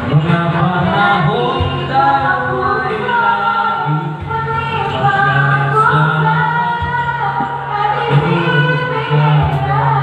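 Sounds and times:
man singing karaoke: 0.0s - 10.0s.

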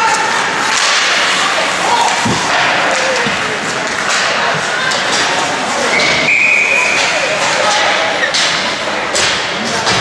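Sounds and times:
faint shouting voices: 0.0s - 9.3s
hockey sticks and puck clacking: 0.0s - 10.0s.

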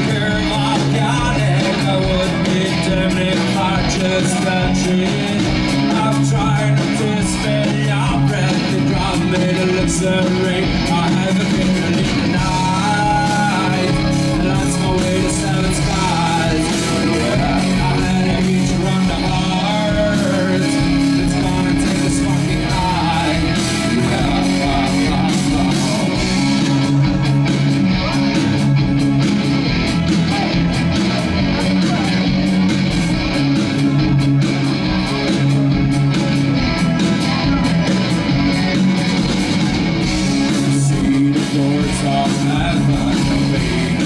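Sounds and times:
man singing into microphone: 0.0s - 26.2s, 40.6s - 44.0s
bass: 0.0s - 44.0s
drum kit steady beat: 0.0s - 44.0s
electric guitars: 0.0s - 44.0s
keyboards: 0.0s - 44.0s
live rock band playing: 0.0s - 44.0s.

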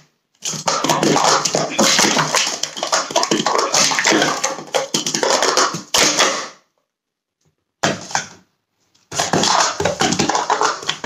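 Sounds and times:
plastic cups clattering: 0.4s - 6.6s, 9.1s - 11.0s.

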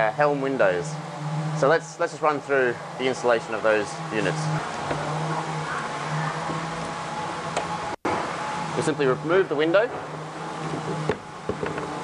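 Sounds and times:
low background drone: 0.0s - 12.0s.

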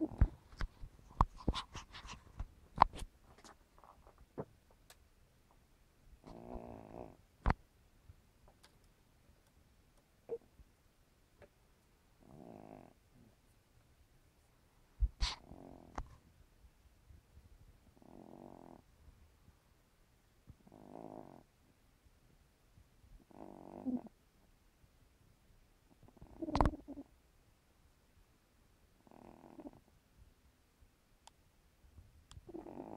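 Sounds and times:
cat snoring: 6.2s - 7.2s, 12.2s - 13.3s, 15.2s - 15.9s, 17.9s - 18.8s, 20.6s - 21.5s, 23.2s - 24.1s, 26.1s - 27.1s, 29.0s - 29.8s, 32.5s - 32.9s.

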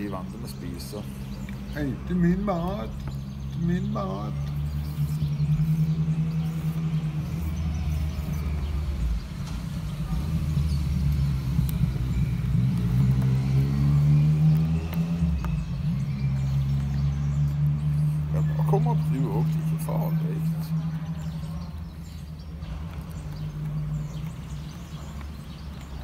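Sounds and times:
engine running with low hum: 0.0s - 26.0s.

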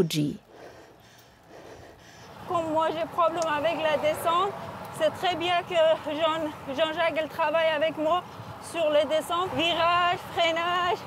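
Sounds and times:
woman speaking: 0.0s - 0.4s.

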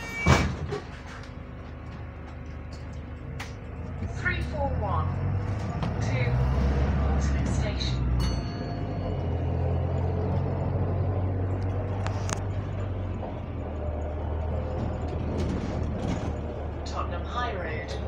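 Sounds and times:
bus interior hum: 0.0s - 18.0s
voices: 4.0s - 8.5s, 16.8s - 18.0s.

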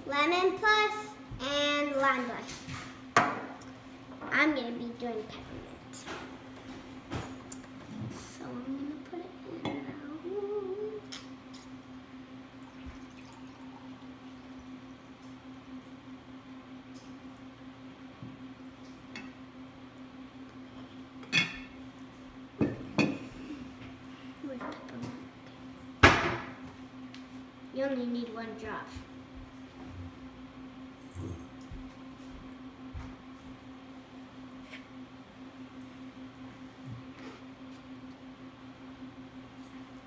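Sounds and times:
water trickling into a mug: 12.6s - 14.2s.

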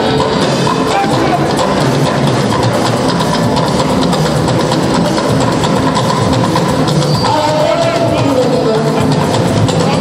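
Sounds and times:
drums: 0.0s - 10.0s
heavy bass: 0.0s - 10.0s
loud live band music: 0.0s - 10.0s.

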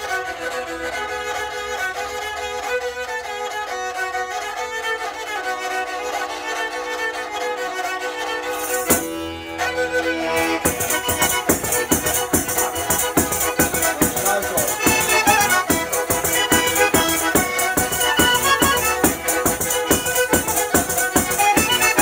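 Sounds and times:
bagpipe drone and melody: 0.0s - 22.0s
bowed string instrument: 0.0s - 22.0s
jingling frame drum beat: 8.6s - 9.2s, 10.4s - 22.0s.

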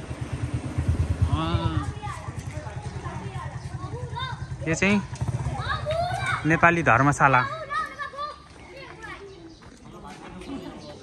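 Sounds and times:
small engine idling: 0.0s - 7.2s.

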